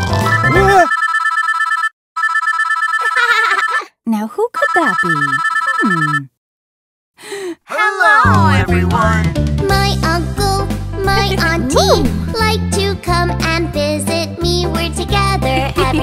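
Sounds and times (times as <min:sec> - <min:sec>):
warbling two-tone telephone ring: 0:00.2 - 0:03.9, 0:04.6 - 0:06.3
cartoon character voices: 0:00.5 - 0:00.9, 0:03.0 - 0:03.9, 0:04.6 - 0:06.3, 0:07.6 - 0:09.3, 0:11.1 - 0:12.3
children's music: 0:07.8 - 0:16.0.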